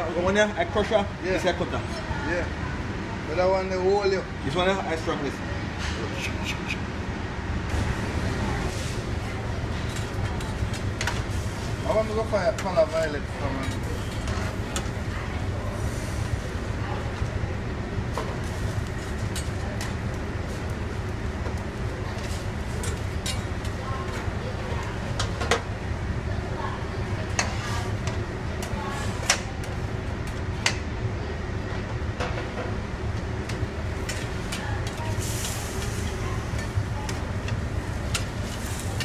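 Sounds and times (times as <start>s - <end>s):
kitchen rumble: 7.7s - 30.8s
gas burner on high flame: 7.7s - 30.9s, 33.1s - 39.0s.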